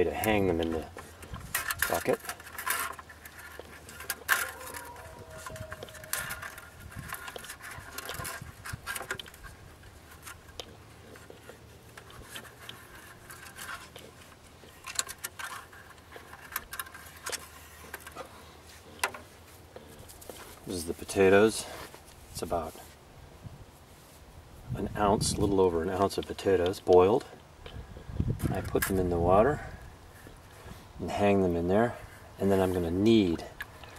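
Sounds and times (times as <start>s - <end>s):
wire clicking and scraping on handle: 0.0s - 22.7s, 25.4s - 33.9s.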